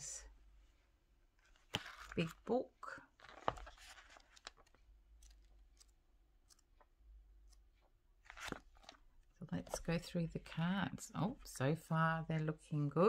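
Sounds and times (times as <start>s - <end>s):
paper pages handled: 1.4s - 2.5s, 3.1s - 6.9s, 8.2s - 10.0s
card deck rustle: 1.6s - 2.4s, 3.2s - 5.9s, 8.2s - 9.0s.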